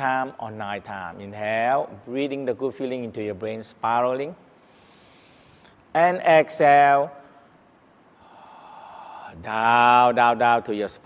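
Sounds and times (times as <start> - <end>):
man breathing: 4.6 - 5.8, 8.2 - 9.4.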